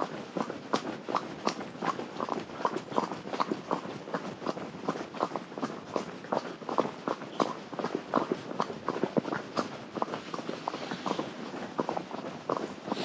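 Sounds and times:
horse hooves on gravel track: 0:00.0 - 0:13.0.

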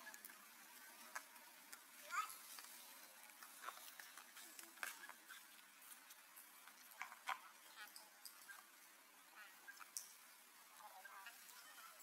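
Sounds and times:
faint scattered clicks: 0:00.0 - 0:08.9, 0:09.6 - 0:12.0.

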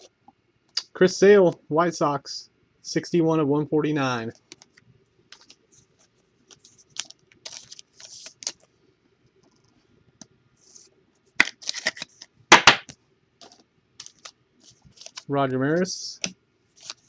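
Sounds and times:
trading cards clicking and sliding: 0:04.4 - 0:08.7, 0:11.4 - 0:15.3, 0:16.2 - 0:17.0
foil card packs crinkling: 0:06.5 - 0:08.7, 0:11.4 - 0:12.3, 0:13.4 - 0:15.3, 0:16.7 - 0:17.0.

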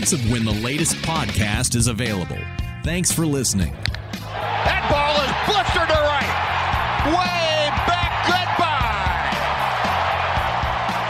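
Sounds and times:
music with beat and bass: 0:04.0 - 0:11.0
crowd cheering: 0:04.1 - 0:11.0.

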